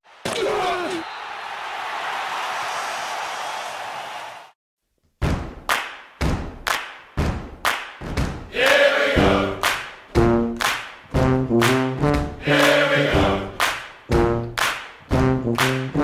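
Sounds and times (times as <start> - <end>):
crowd roar: 0.1 - 4.6, 8.5 - 9.5, 12.4 - 13.5
person shouting: 0.3 - 1.0
heavy thumping beat: 9.2 - 16.0
jazz band brass: 10.1 - 13.5, 14.1 - 16.0.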